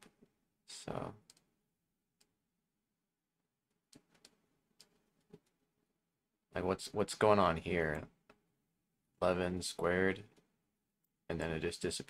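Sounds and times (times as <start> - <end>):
computer mouse clicks: 3.9 - 5.6.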